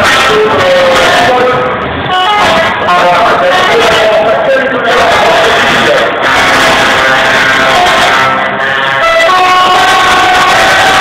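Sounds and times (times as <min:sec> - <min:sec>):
truck air horn chord: 0:05.3 - 0:11.0.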